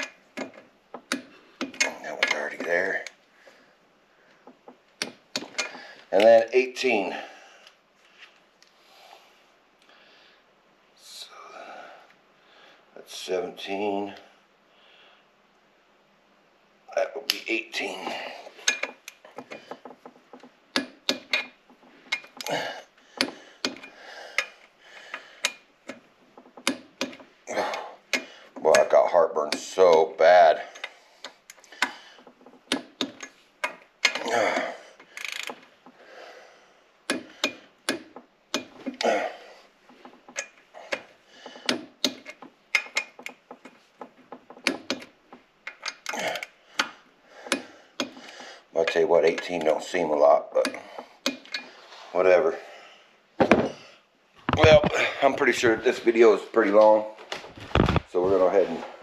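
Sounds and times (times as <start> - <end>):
torque wrench ratchet clicking: 35.2 - 35.6.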